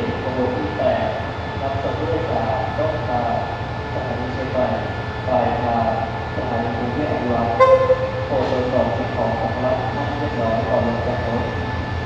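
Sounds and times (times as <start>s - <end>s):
people's voices: 0.0s - 11.6s
locomotive engine drone: 0.0s - 12.0s
locomotive horn toot: 7.6s - 8.7s.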